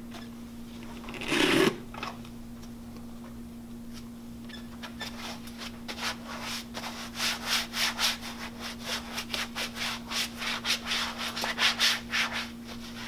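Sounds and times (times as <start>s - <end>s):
steady low hum: 0.0s - 13.0s
rubber gloves rubbing: 1.1s - 1.9s.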